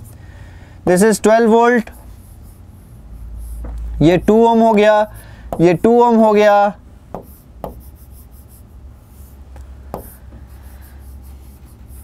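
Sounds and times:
stylus scratching on touchscreen: 0:01.8 - 0:06.4, 0:07.2 - 0:09.4, 0:10.0 - 0:12.0.

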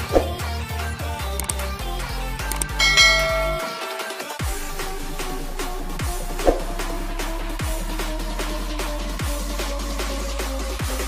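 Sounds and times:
electronic music with beat: 0:00.0 - 0:11.0
bell ding: 0:02.8 - 0:04.4.

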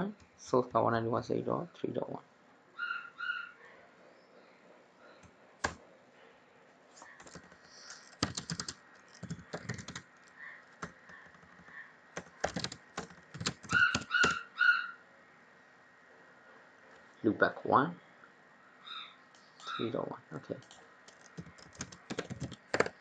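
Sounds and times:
computer keyboard typing: 0:07.0 - 0:14.4, 0:20.6 - 0:23.0.

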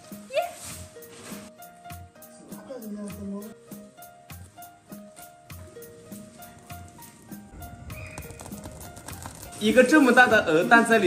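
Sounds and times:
light tune with ticking beat: 0:00.0 - 0:11.0.

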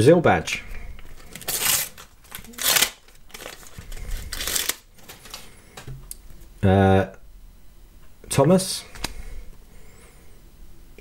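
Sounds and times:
sticker packet tearing and rustling: 0:01.1 - 0:05.5.

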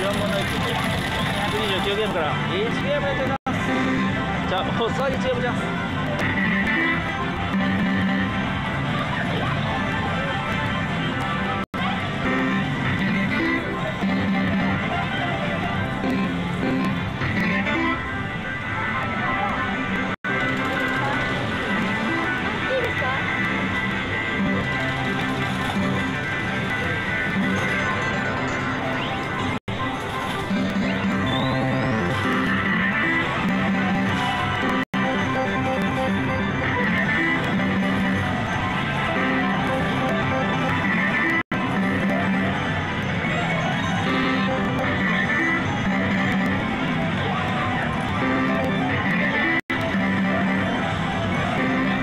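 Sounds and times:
slot machine music and jingles: 0:00.0 - 0:06.0, 0:19.9 - 0:52.0.

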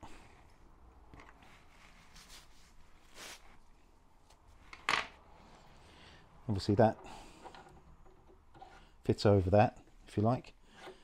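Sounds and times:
faint rubbing and rustling: 0:00.2 - 0:05.9, 0:06.5 - 0:11.0.

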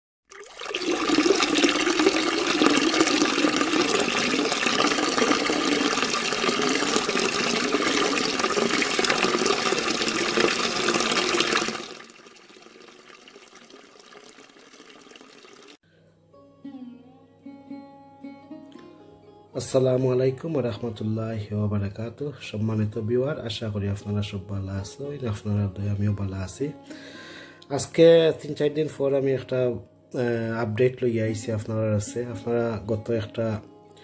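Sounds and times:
water pouring into a glass: 0:00.3 - 0:15.8.

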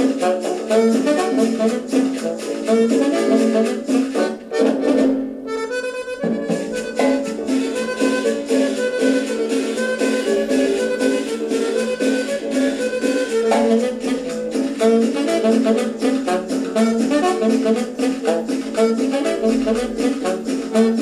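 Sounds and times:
latin dance music on a turntable: 0:00.0 - 0:05.4, 0:06.0 - 0:21.0
single held note: 0:06.7 - 0:07.9, 0:13.4 - 0:14.9.

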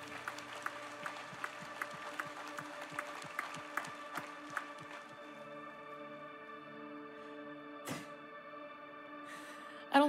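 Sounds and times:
hands clapping in a steady beat: 0:00.0 - 0:05.6
background music chord: 0:00.0 - 0:10.0.

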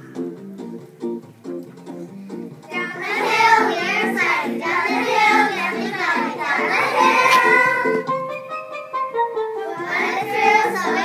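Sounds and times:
song accompaniment over loudspeaker: 0:02.6 - 0:11.0
children singing: 0:02.7 - 0:08.2, 0:09.6 - 0:11.0.

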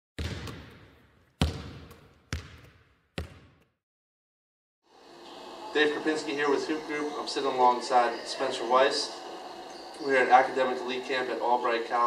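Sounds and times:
basketball bouncing on hard floor: 0:00.2 - 0:03.7.

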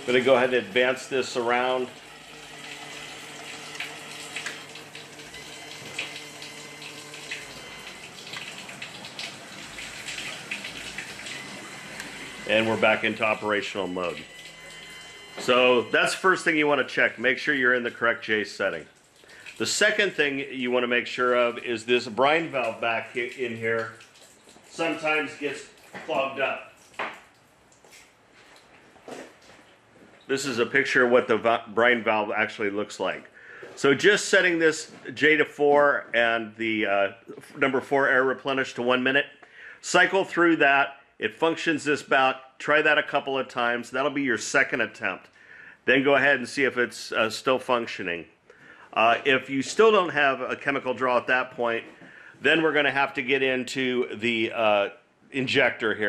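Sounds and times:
person speaking: 0:00.0 - 0:02.0, 0:12.4 - 0:14.3, 0:15.4 - 0:18.9, 0:19.6 - 0:24.0, 0:24.7 - 0:26.8, 0:48.9 - 0:56.0
water rushing through valve: 0:00.0 - 0:18.0, 0:18.6 - 0:27.4.

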